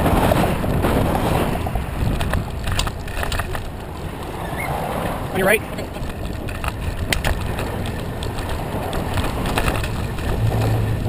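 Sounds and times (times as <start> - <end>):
wind rumbling on microphone: 0.0 - 11.0
wavering voice-like call: 4.4 - 4.8.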